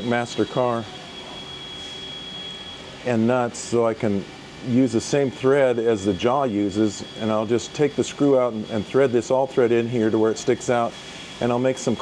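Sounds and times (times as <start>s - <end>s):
faint high whine: 0.0s - 12.0s
machine shop background noise: 0.0s - 12.0s.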